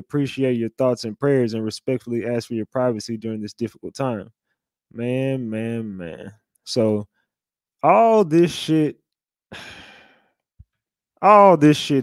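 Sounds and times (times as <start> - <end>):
man sighing: 9.5 - 10.3.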